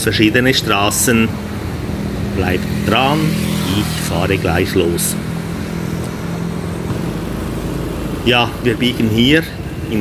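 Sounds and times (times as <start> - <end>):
road and traffic noise: 0.0 - 10.0
scooter engine running: 1.1 - 9.8.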